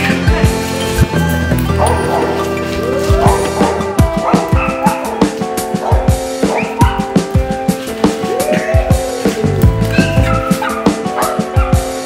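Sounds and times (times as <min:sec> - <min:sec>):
background music with sustained tones: 0:00.0 - 0:12.0
dog barking: 0:01.8 - 0:02.4, 0:03.2 - 0:07.2, 0:09.9 - 0:12.0.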